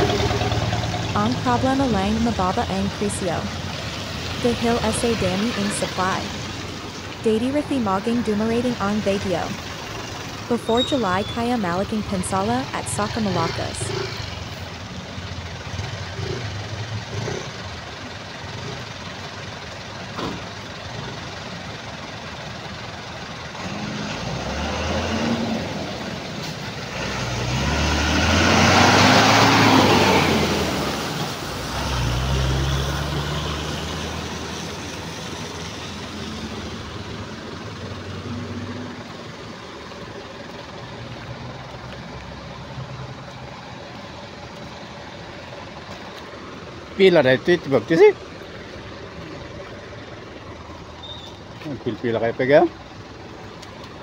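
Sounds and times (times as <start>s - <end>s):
trucks passing: 0.0s - 54.0s.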